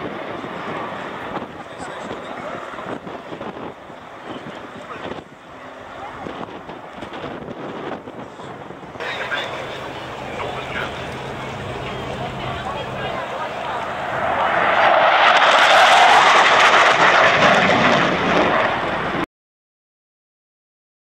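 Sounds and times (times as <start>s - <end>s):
jet roar: 0.0s - 19.3s.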